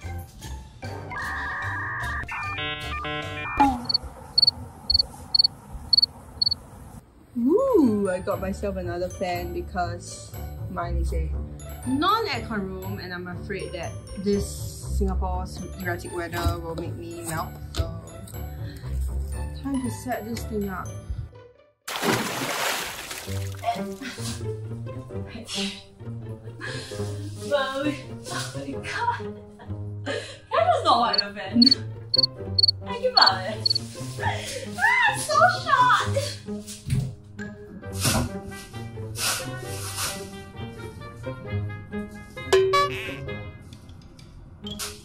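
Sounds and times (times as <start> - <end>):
cricket chirping: 3.8 - 6.6, 31.1 - 33.8.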